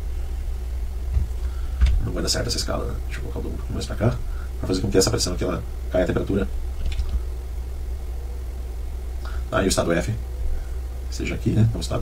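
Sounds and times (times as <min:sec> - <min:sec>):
low-pitched hum: 0:00.0 - 0:12.0
short low thumps: 0:00.9 - 0:02.1.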